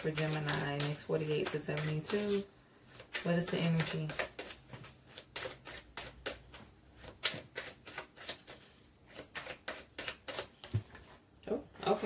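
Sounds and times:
cards being shuffled: 0:00.1 - 0:11.2.

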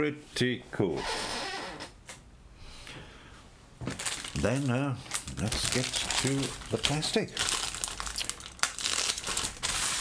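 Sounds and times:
plastic bag rustling: 0:03.8 - 0:10.0.

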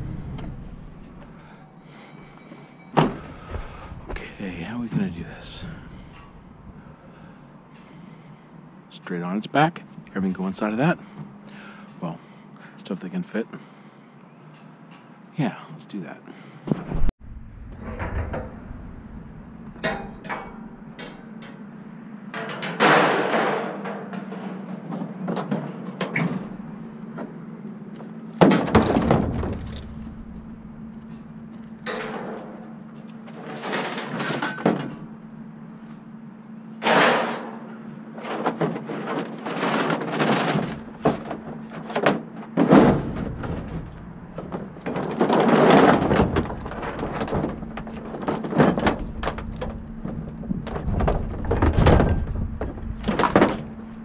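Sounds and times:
scrap clattering in truck bed: 0:17.7 - 0:21.6, 0:22.4 - 0:27.5, 0:28.4 - 0:35.1, 0:36.8 - 0:54.0
heavy thuds in truck bed: 0:28.4 - 0:31.2, 0:40.3 - 0:54.0.

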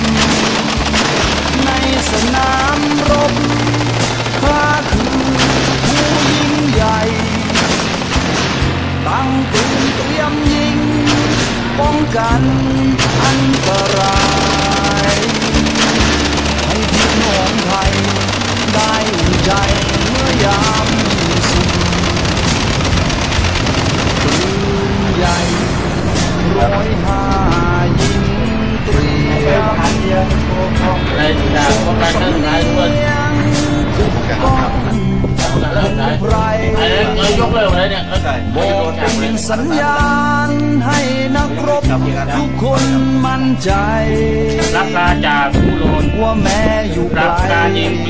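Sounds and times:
machine-gun fire: 0:00.0 - 0:11.8, 0:12.9 - 0:25.6
song with singing and bass: 0:00.0 - 0:23.6, 0:24.2 - 0:48.0.

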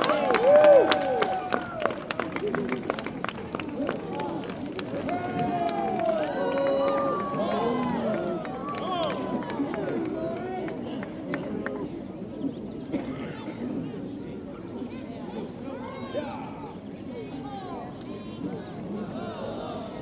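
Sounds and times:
people clapping: 0:00.0 - 0:11.9
crowd babble: 0:00.0 - 0:20.0.

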